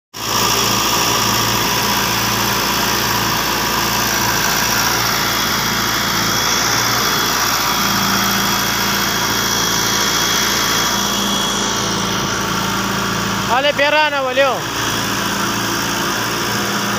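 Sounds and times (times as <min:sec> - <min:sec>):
excavator diesel engine running: 0:00.1 - 0:16.9.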